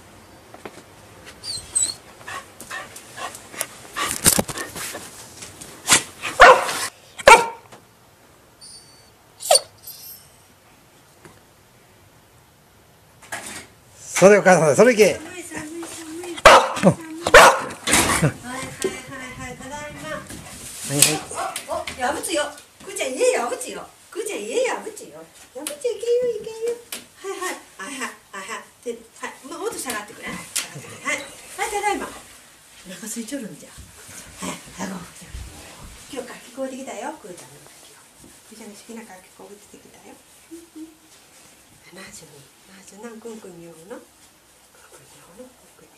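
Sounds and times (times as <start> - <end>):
dog whining: 1.4 - 2.1, 8.6 - 10.4
dog barking: 6.4 - 7.6, 16.4 - 17.8, 21.3 - 21.8.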